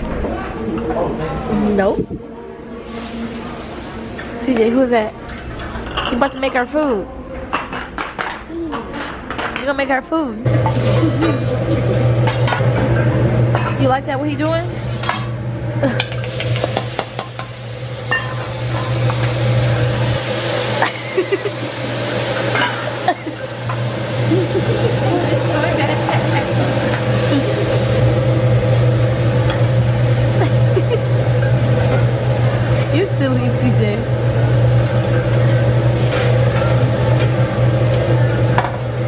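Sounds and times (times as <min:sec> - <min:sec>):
steady low hum: 0:10.4 - 0:39.0
food sizzling: 0:10.5 - 0:13.0, 0:14.6 - 0:39.0.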